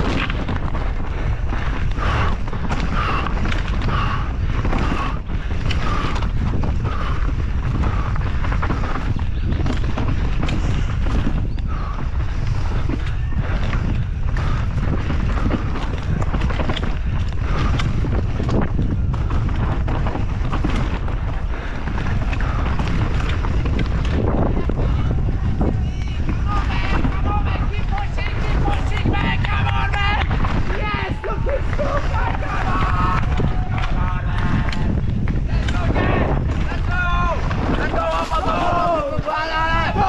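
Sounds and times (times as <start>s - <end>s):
bike rattling and knocking: 0.0s - 40.0s
tyres rumbling over dirt: 0.0s - 40.0s
wind buffeting microphone: 0.0s - 40.0s.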